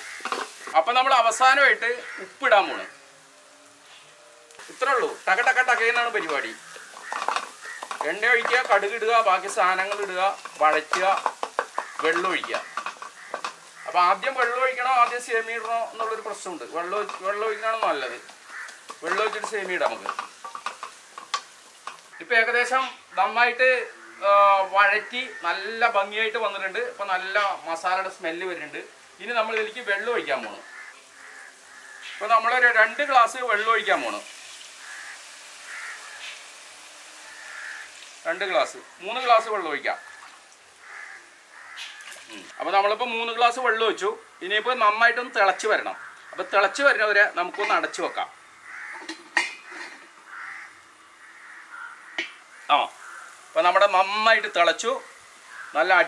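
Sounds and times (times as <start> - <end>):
spatula scraping against pan: 0.0 - 0.8, 4.7 - 22.2, 48.7 - 50.5
masala frying in a wok: 0.0 - 56.0.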